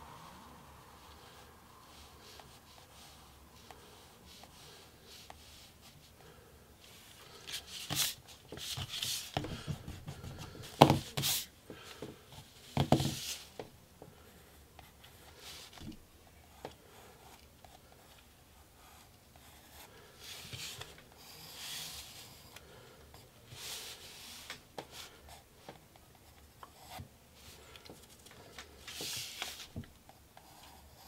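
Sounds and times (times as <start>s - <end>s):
pencil scratching on paper: 30.4s - 31.0s.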